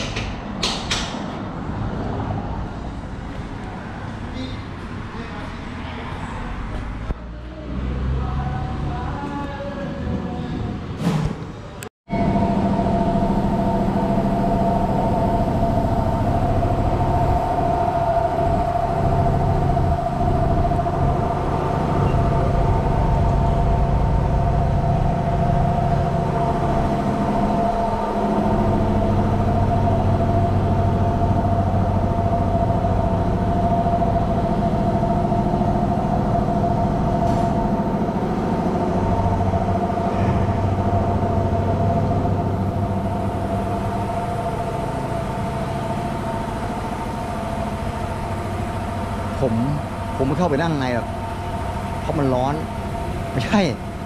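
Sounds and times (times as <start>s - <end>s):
mechanical hum: 0.0s - 54.0s
constant whine: 12.1s - 54.0s.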